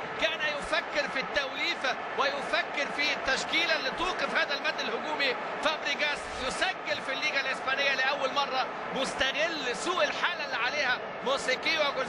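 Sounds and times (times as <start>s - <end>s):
man talking: 0.1s - 12.0s.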